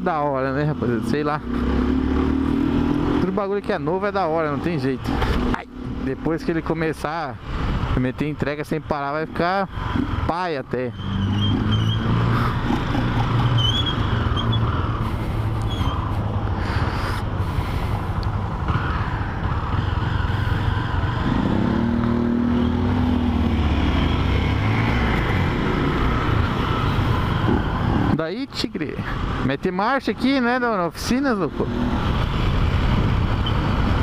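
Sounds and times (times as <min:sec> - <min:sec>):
motorcycle engines running: 0:00.0 - 0:34.0
road noise: 0:00.0 - 0:34.0.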